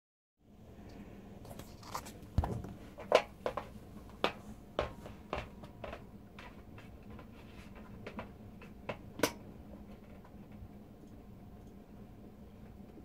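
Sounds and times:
faint steady hum: 0:00.4 - 0:13.0.

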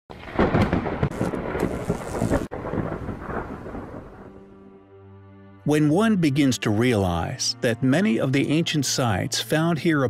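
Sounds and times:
thunder-like rumbling and crackling: 0:00.1 - 0:04.5.

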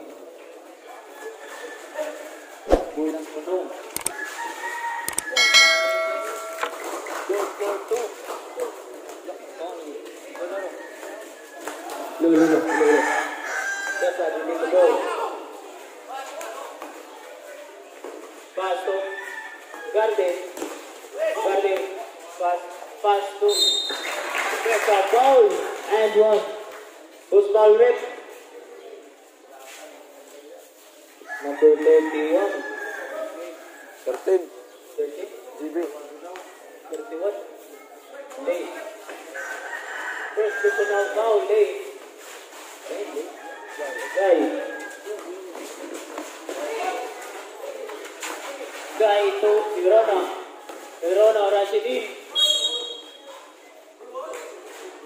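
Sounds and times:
rooster crowing: 0:04.0 - 0:06.5, 0:12.3 - 0:14.6, 0:31.3 - 0:34.0, 0:39.4 - 0:41.4, 0:43.4 - 0:45.1.

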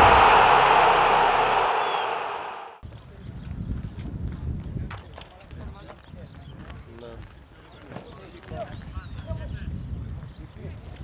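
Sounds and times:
loud rushing intro sting: 0:00.0 - 0:02.8.

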